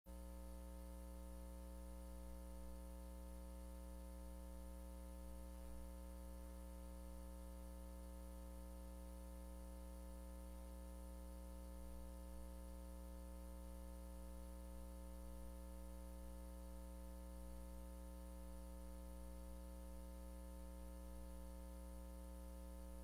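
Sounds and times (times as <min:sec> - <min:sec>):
faint electrical hum: 0:00.1 - 0:23.0.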